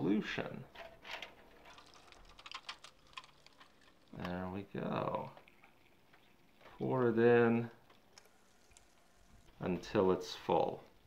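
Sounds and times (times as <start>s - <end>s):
faint ticking and crackling: 0.6s - 11.0s
liquid pouring: 1.4s - 11.0s.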